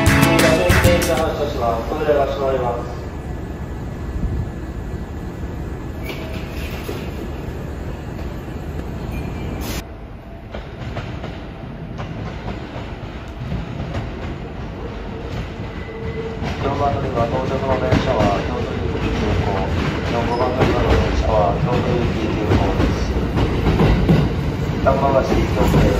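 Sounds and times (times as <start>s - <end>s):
electric train rumbling: 0.0s - 25.9s.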